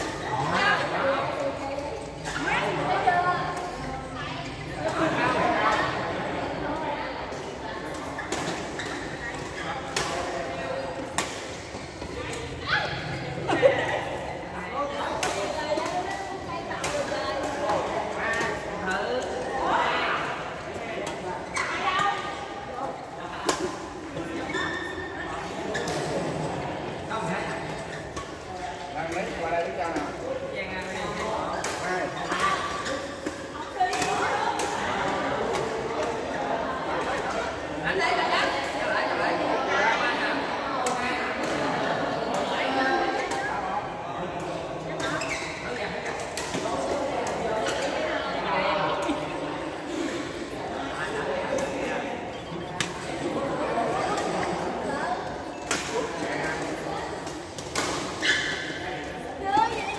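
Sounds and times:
people talking and calling out: 0:00.0 - 0:59.9.

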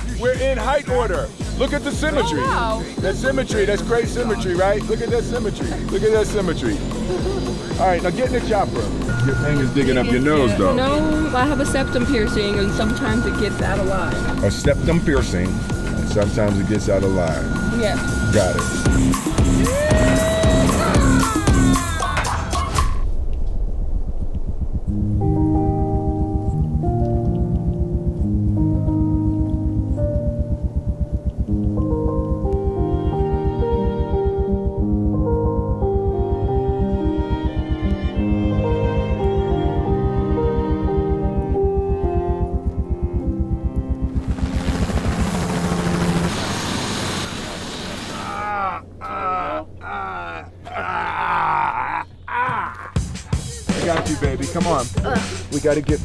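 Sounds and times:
slow held chords: 0:00.0 - 0:46.3
fast low throbbing: 0:00.0 - 0:49.0
steady low hum: 0:01.2 - 0:21.9, 0:23.0 - 0:52.5
person groaning: 0:48.2 - 0:53.1.

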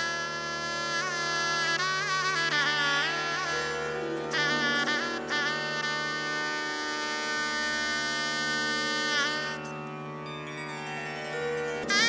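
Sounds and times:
continuous drone: 0:00.0 - 0:12.0
shehnai holding long note: 0:00.0 - 0:12.0.

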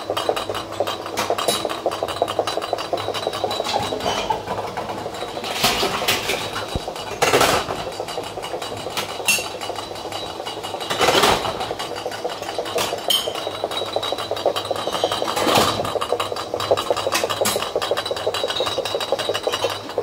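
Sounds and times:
steady machine hum: 0:00.0 - 0:20.0
glass bottle rattling: 0:12.3 - 0:20.0.

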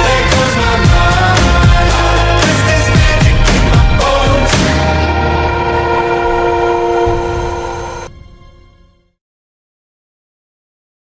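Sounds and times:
held pop-rock closing chord: 0:00.0 - 0:07.0.

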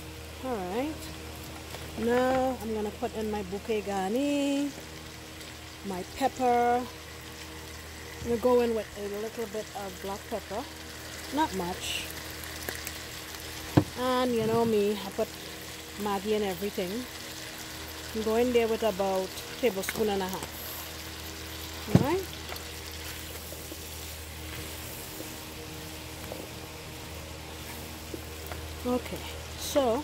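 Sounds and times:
food sizzling in pot: 0:00.0 - 0:30.0.

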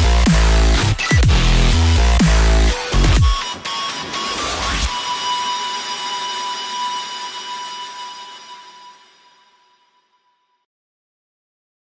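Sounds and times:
background music: 0:00.0 - 0:09.8
held electronic tone: 0:02.9 - 0:10.1.

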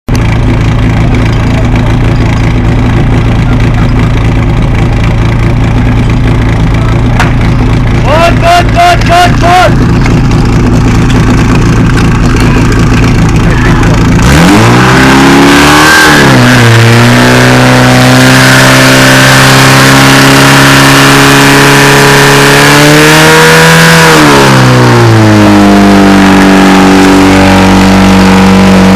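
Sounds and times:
pump engine revving: 0:00.1 - 0:28.9.

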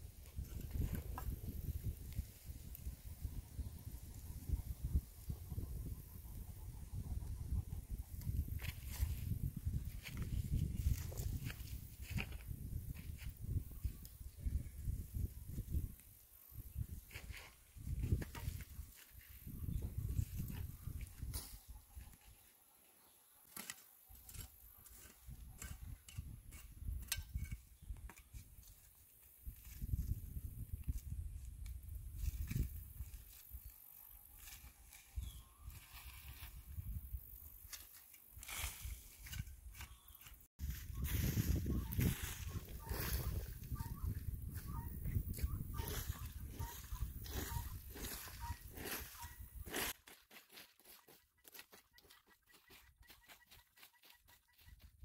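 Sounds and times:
hoe scraping dry soil: 0:23.5 - 0:31.2, 0:37.6 - 0:44.1, 0:45.4 - 0:54.8.

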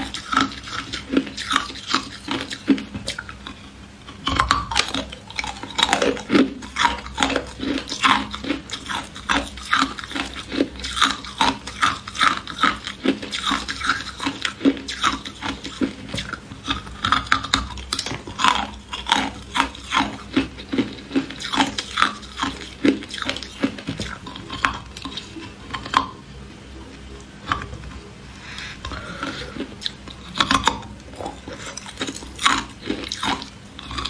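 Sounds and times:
ice being chewed: 0:00.0 - 0:26.2, 0:27.1 - 0:34.0.

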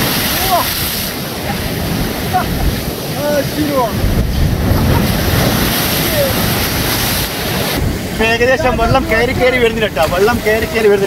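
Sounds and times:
surf breaking over rocks: 0:00.0 - 0:11.0
wind buffeting microphone: 0:00.0 - 0:11.0.

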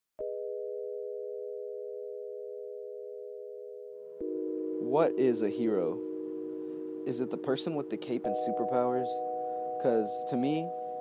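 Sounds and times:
sustained electronic chord: 0:00.2 - 0:11.0.

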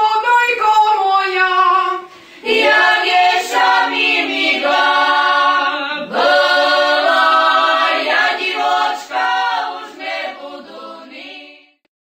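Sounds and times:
unaccompanied choir singing: 0:02.4 - 0:11.8.

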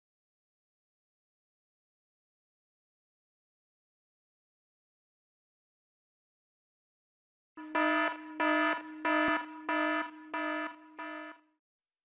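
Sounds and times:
electronic alarm beeping: 0:07.6 - 0:11.4.

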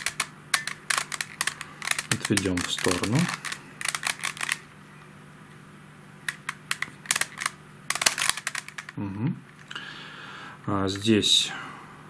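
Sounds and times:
plastic puzzle clicking: 0:00.0 - 0:04.6, 0:06.3 - 0:09.0.

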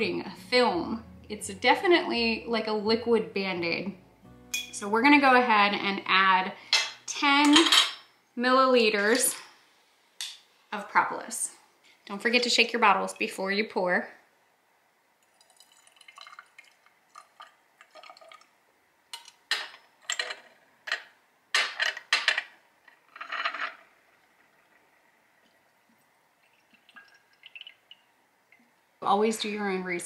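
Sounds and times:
glass and metal clinks: 0:04.5 - 0:04.8
liquid pouring splash: 0:15.2 - 0:18.5, 0:23.8 - 0:28.6.

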